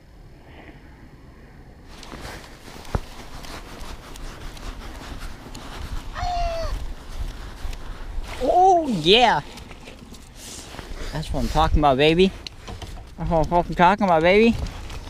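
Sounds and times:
fabric rubbing on microphone: 1.9s - 15.0s
short falling voice-like call: 6.1s - 6.8s.

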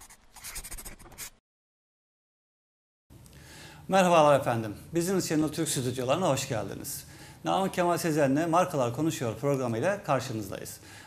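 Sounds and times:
pen scratching on paper: 0.0s - 1.4s.

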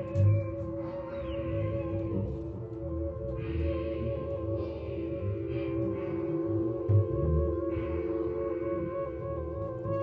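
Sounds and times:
analog synthesizer: 0.0s - 10.0s.

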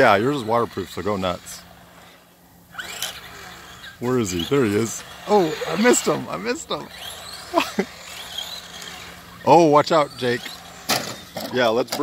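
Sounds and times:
electric motor whine: 0.0s - 12.0s.

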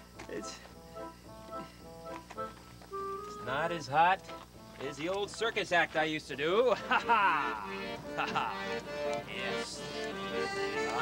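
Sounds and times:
accordion playing softly: 0.0s - 11.0s.

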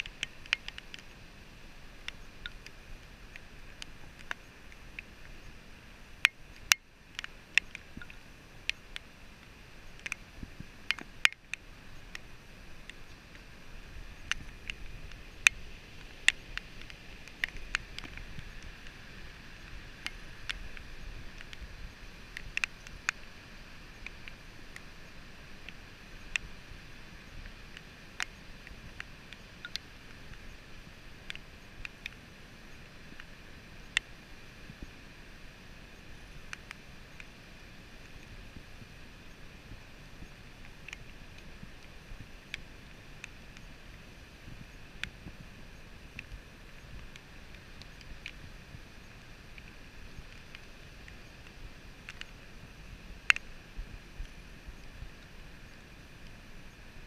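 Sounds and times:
sharp irregular ticks: 0.0s - 23.3s, 23.9s - 32.3s, 44.6s - 56.8s.

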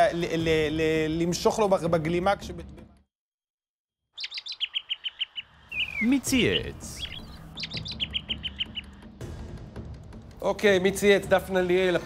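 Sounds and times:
bird chirp sound effects: 4.1s - 9.2s
low music bed: 5.6s - 12.0s.

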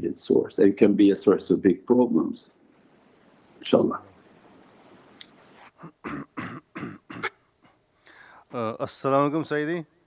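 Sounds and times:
man coughing: 5.8s - 7.4s.

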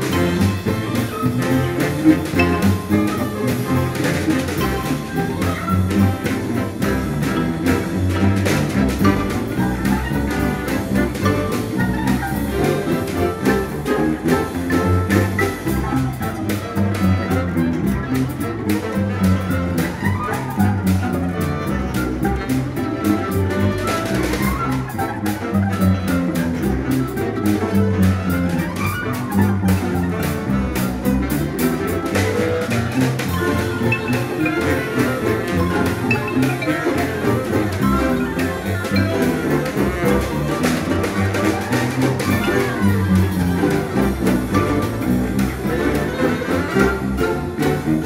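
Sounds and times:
folk instrument ensemble: 0.0s - 48.0s
plucked bass balalaika: 0.0s - 48.0s.

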